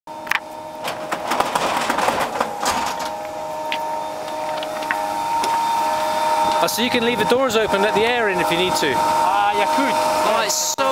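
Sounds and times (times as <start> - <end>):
turbine machine whine: 0.1 - 10.9.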